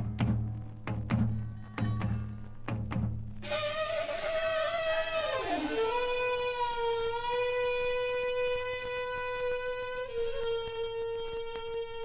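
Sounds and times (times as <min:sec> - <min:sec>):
saxophone holding a long note: 0:03.4 - 0:12.0.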